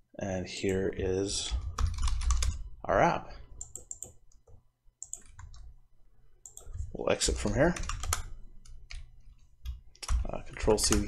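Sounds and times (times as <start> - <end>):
computer keyboard keystrokes: 1.6 - 2.6, 3.6 - 5.7, 6.4 - 11.0.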